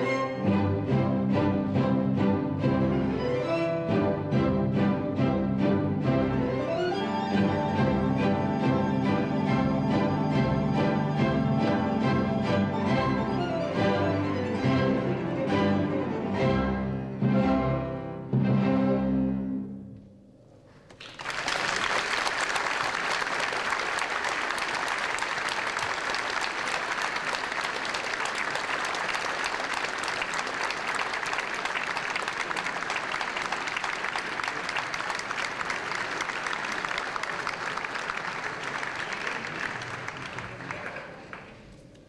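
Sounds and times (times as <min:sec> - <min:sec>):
audience applauding: 0:20.9 - 0:42.0.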